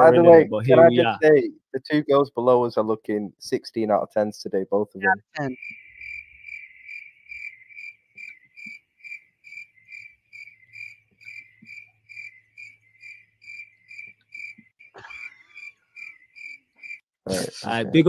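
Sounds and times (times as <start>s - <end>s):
cricket chirping: 5.5s - 17.0s.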